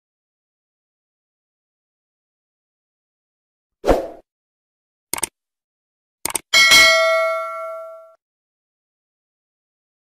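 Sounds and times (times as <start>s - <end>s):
quick double click: 5.1s - 5.3s, 6.2s - 6.5s
bright bell ding: 6.6s - 8.2s.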